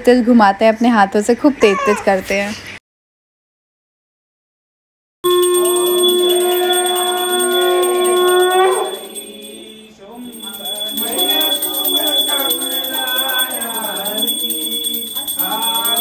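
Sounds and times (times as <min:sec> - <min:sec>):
devotional singing with music: 0:05.9 - 0:16.0.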